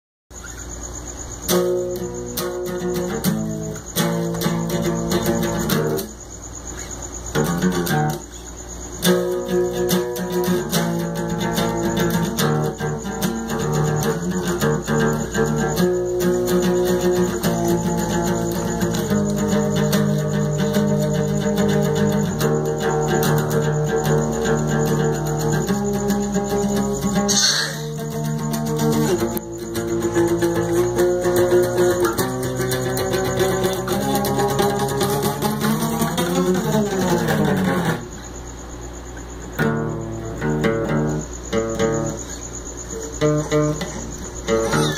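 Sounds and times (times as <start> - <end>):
acoustic guitar chords: 1.4 - 44.9.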